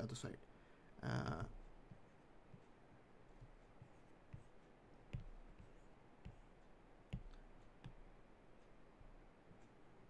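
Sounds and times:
stylus tapping on tablet screen: 1.4 - 9.8.

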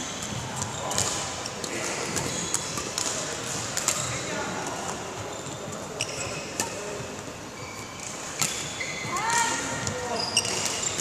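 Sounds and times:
rackets striking shuttlecocks: 0.6 - 4.2, 8.1 - 8.7.

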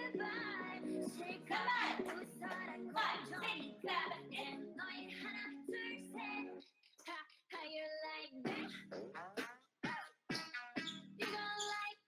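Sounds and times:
pop song with singing: 0.0 - 12.0.

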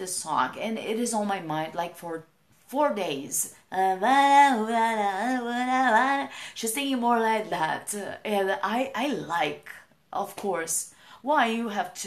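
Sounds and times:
woman singing unaccompanied: 2.8 - 9.6.

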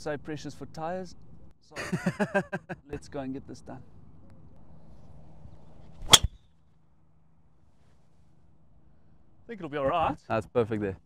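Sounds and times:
golf driver striking ball: 6.0 - 6.4.

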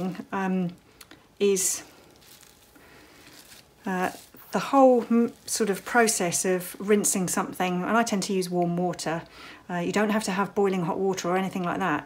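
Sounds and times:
wet wool rustling on bubble wrap: 0.0 - 9.1.

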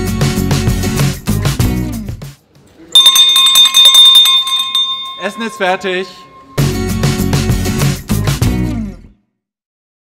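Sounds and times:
background music: 0.0 - 9.2
brass hand bell ringing rapidly: 3.0 - 7.7.

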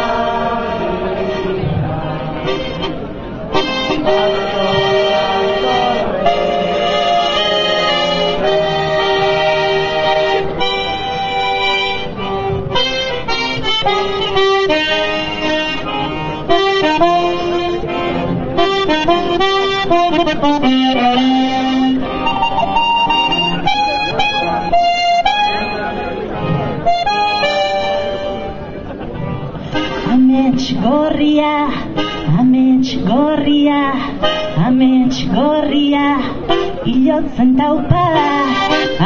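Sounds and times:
button accordion melody: 0.0 - 39.0.

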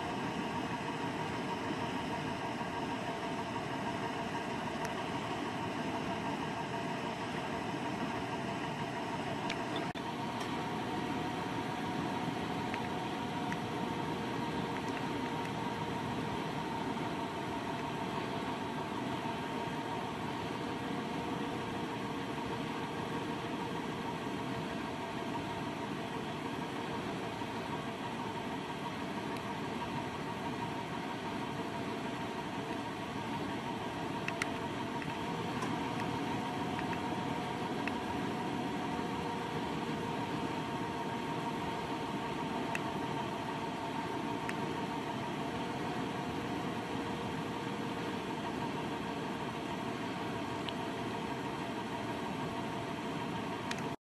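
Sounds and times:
machine hum: 0.0 - 54.0.

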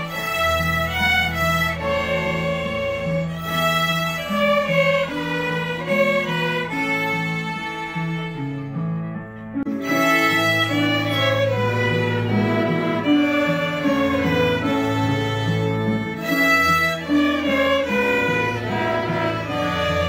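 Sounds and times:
string orchestra playing: 0.0 - 20.0.

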